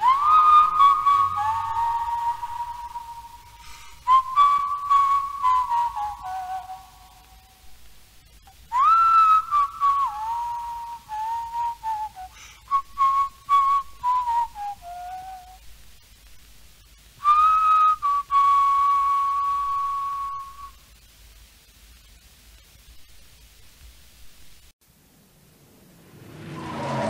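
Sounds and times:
person whistling a melody: 0.0 - 7.4, 8.7 - 15.6, 17.2 - 20.8
cassette tape hiss: 0.0 - 26.3.

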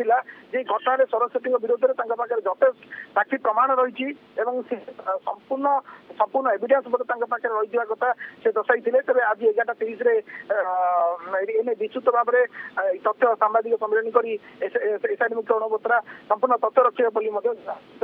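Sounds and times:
man talking over telephone: 0.0 - 18.0.

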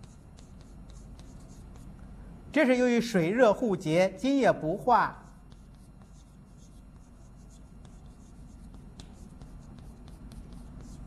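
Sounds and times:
chalk scratching on blackboard: 0.0 - 2.0, 5.1 - 11.0
chalk tapping on board: 0.0 - 2.0, 5.2 - 11.0
low room hum: 0.0 - 11.0.

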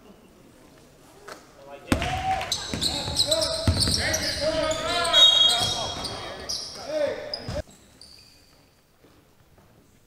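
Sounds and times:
players' voices: 1.6 - 7.6
basketball bouncing on hardwood: 1.9 - 4.1
sneakers squeaking: 1.9 - 9.8.

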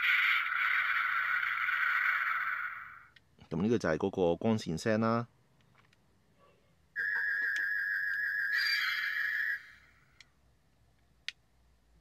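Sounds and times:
electronic toy whine: 0.0 - 3.1, 7.0 - 10.0.

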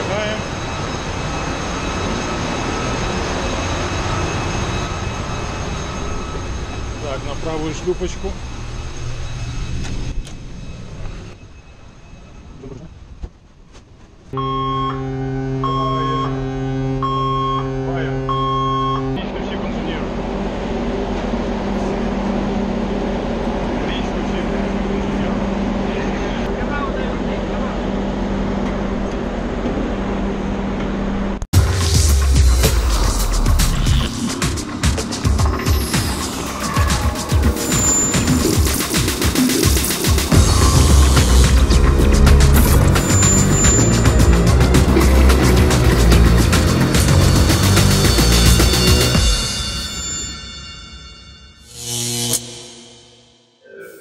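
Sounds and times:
machinery drone: 0.0 - 13.2, 14.4 - 54.0
held electronic tone: 14.4 - 19.3, 32.7 - 54.0
loud music: 31.6 - 50.3
repeating beep: 36.6 - 44.4.

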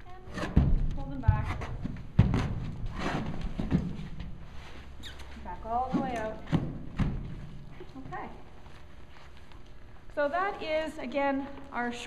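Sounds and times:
horse hoof thud: 0.3 - 4.4, 5.4 - 8.3.

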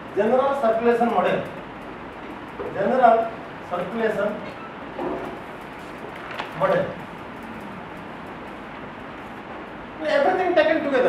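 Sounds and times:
classroom background noise: 0.0 - 11.0.

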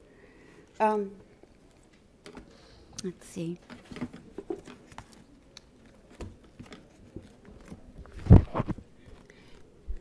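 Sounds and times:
book pages rustling: 3.6 - 9.7.

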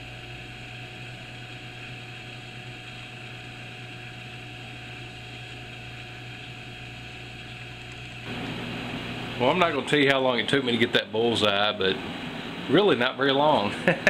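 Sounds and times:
low machine hum: 0.0 - 14.0.

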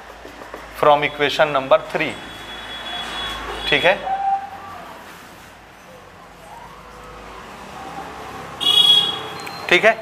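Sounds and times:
marker tip squeaking: 9.3 - 9.7.

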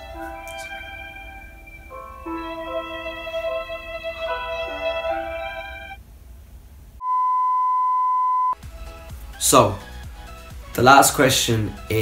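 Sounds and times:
high-pitched test tone beep: 7.0 - 8.6.

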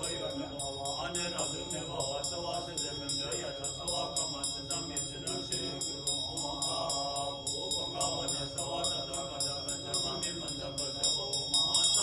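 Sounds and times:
hand bell ringing rapidly: 0.0 - 12.0
monks chanting in low voices: 0.0 - 12.0.

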